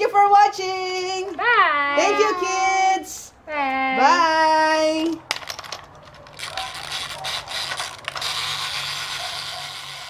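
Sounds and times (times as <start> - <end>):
plastic gears clicking: 5.3 - 10.0
toy motor humming: 6.2 - 10.0.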